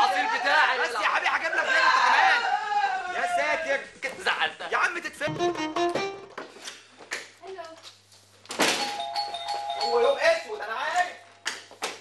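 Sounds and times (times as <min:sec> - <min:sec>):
two-tone doorbell chime: 0:08.8 - 0:10.6.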